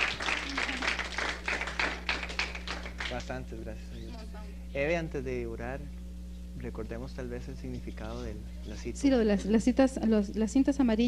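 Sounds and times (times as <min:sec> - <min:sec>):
audience clapping: 0:00.0 - 0:03.5
low electrical hum: 0:00.0 - 0:11.0.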